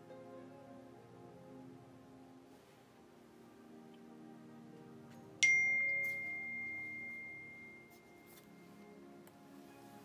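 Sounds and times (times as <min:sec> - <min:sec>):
soft background music: 0:00.0 - 0:10.0
high pure chime tone: 0:05.4 - 0:09.0.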